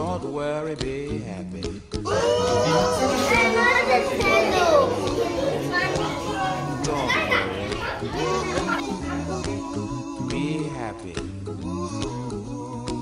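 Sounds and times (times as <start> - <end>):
children chattering and calling out: 2.1 - 9.5.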